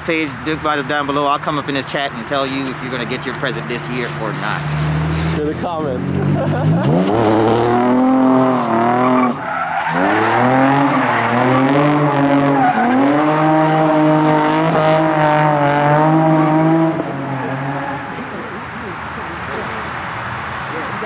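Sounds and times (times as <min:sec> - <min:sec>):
car engine revving: 0:00.0 - 0:20.8.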